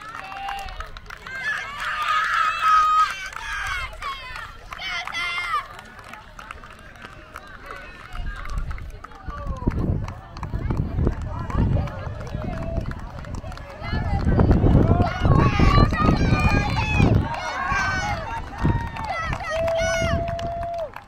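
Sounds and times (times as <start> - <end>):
spectators calling out and chattering: 0.0 - 21.0.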